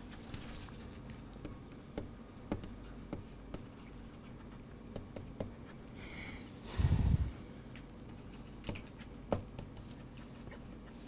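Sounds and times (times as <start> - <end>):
stylus scratching on tablet: 0.8 - 6.0
stylus tapping: 1.3 - 6.0, 7.8 - 10.3.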